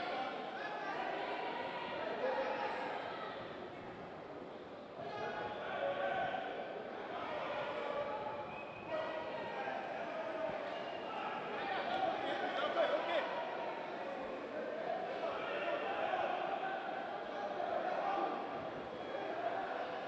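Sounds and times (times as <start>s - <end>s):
crowd chatter: 0.0s - 20.0s.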